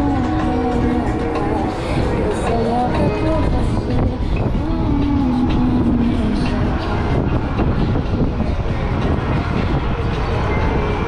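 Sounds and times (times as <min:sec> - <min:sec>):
wind rush on microphone: 0:00.0 - 0:11.0.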